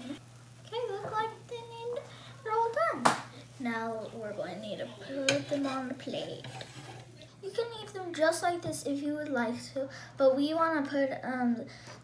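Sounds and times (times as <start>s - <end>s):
young girl talking: 0.0s - 6.5s, 7.3s - 11.9s
sharp tap: 3.0s - 3.3s.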